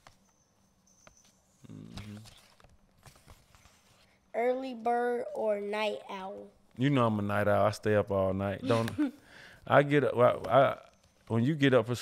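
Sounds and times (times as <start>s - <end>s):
paper cards clicking and rustling: 1.9s - 4.0s
person murmuring: 8.6s - 9.2s.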